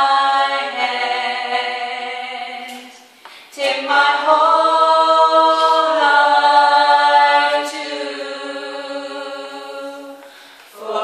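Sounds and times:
vocal group singing: 0.0s - 11.0s.

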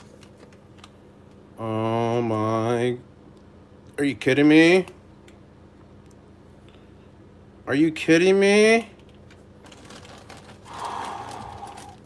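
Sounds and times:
plastic bags rustling: 9.6s - 12.0s
person exhaling breathily: 10.7s - 12.0s.

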